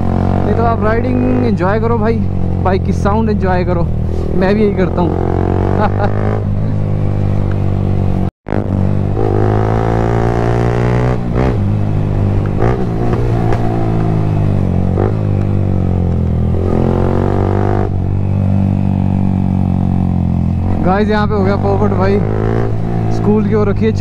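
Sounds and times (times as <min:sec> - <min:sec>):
motorcycle engine revving: 0:00.0 - 0:24.0.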